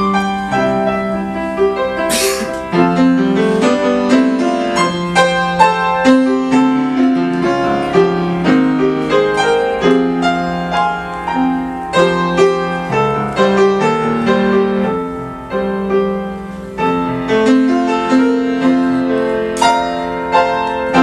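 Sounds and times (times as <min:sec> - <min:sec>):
grand piano improvising: 0:00.0 - 0:21.0.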